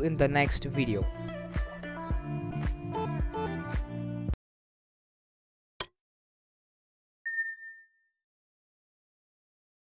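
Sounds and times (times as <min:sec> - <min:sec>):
notification bell ding: 0:07.3 - 0:08.1.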